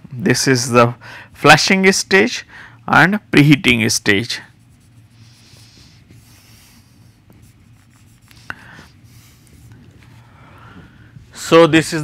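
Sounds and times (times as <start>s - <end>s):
low room hum: 0.0s - 12.0s
marker scratching on whiteboard: 4.4s - 10.0s.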